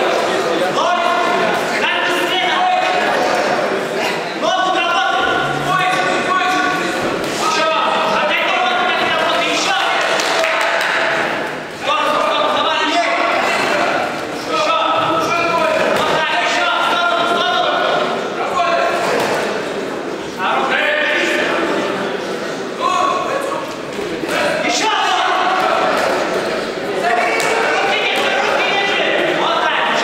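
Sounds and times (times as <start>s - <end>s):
spectators shouting in echoing hall: 0.0s - 30.0s.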